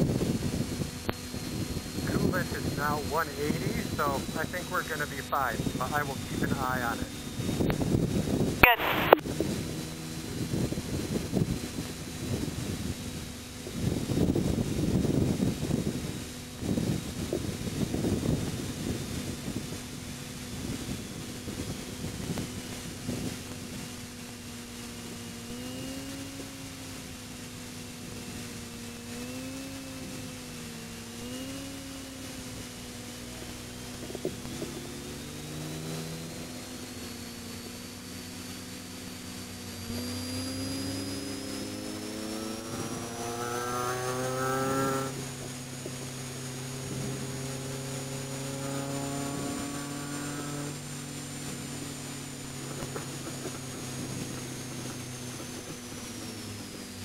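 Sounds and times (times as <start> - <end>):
wind buffeting microphone: 0.0 - 4.6, 5.5 - 24.2, 51.0 - 57.0
car engine accelerating: 0.0 - 57.0
supercharger whine: 0.0 - 57.0.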